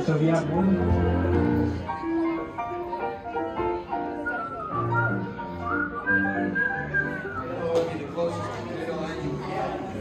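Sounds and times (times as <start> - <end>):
music with whistled melody: 4.0 - 7.8.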